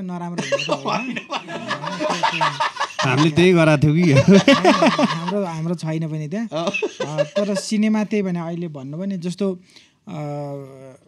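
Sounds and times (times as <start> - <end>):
man talking: 0.0 - 11.0
man chuckling: 0.4 - 5.4, 6.6 - 7.6.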